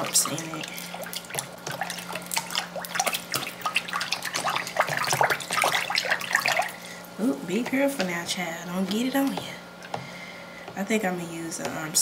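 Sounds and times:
water sloshing in plastic tub: 0:00.0 - 0:10.0.

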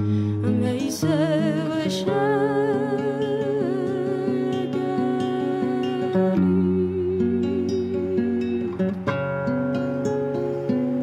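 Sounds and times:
classical guitar fingerpicked: 0:00.0 - 0:11.0.

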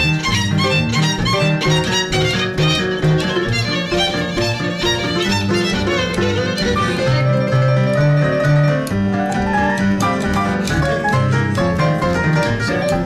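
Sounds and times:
piano: 0:00.0 - 0:13.0
plucked double bass: 0:00.0 - 0:13.0
violin: 0:00.0 - 0:13.0.

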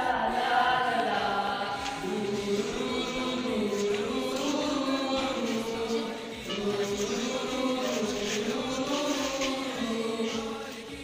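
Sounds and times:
boys singing in unison: 0:00.0 - 0:11.0.

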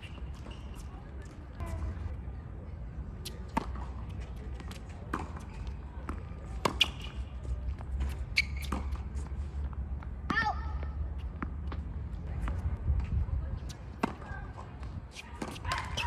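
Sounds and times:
tennis ball hits and bounces: 0:03.2 - 0:10.6.

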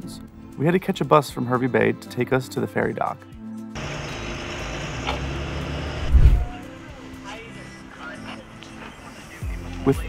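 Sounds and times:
bus engine and tyres rumbling: 0:03.8 - 0:09.9
heavy low thump: 0:06.0 - 0:06.6.

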